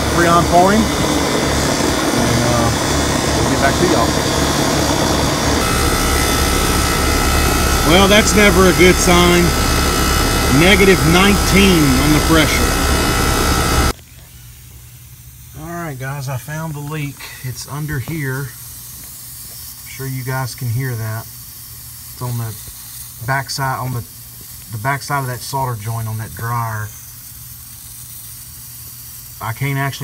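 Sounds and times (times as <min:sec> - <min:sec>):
heat pump unit running: 0:00.0 - 0:14.0
faint hiss of leaking gas: 0:14.2 - 0:30.0.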